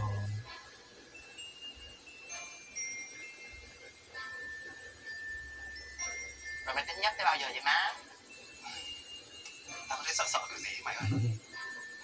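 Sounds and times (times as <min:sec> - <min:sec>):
chime-like ringing music: 0:00.0 - 0:12.0.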